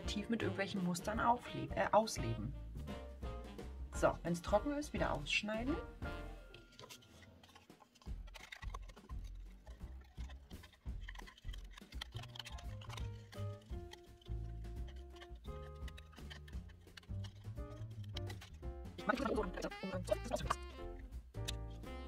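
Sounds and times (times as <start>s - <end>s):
background music with bass line: 1.1s - 6.4s, 8.2s - 22.0s.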